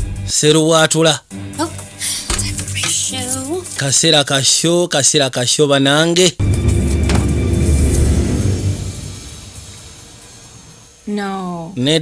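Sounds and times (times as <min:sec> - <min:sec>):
deep rumble with sharp hit: 0:06.4 - 0:11.1.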